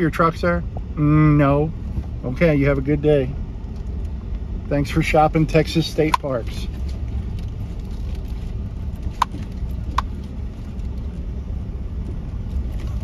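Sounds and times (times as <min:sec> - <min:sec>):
engine and tyres rumbling: 0:00.0 - 0:13.0.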